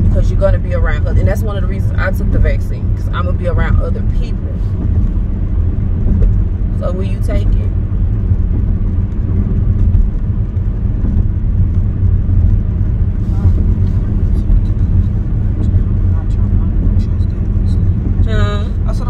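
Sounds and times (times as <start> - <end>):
car cabin road and engine rumble: 0.0 - 19.0.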